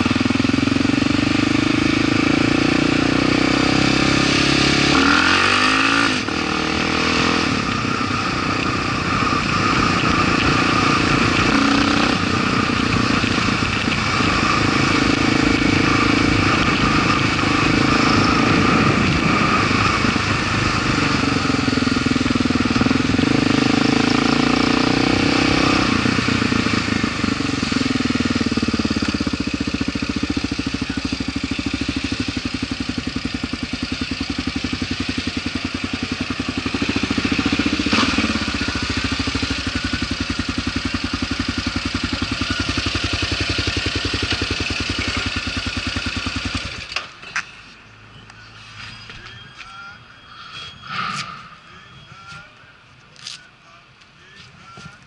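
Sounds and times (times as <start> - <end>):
motorcycle engine running: 0.0 - 48.2.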